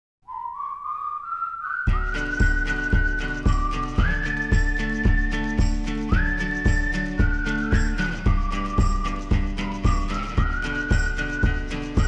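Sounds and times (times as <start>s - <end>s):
whistled melody: 0.2s - 12.0s
band with steady drum beat: 6.7s - 12.0s.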